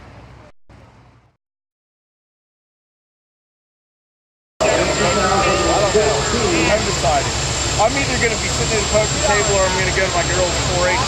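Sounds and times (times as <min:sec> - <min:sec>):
people talking at once: 0:04.6 - 0:11.0
tractor engine idling: 0:04.6 - 0:11.0.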